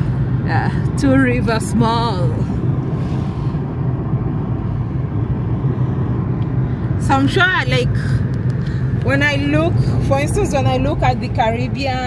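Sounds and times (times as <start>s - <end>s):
road and engine noise inside car: 0.0s - 12.0s.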